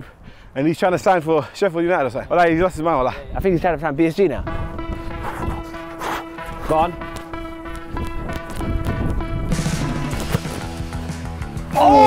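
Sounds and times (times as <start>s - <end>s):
background music held tones: 4.2s - 12.0s
light percussion: 4.4s - 11.8s.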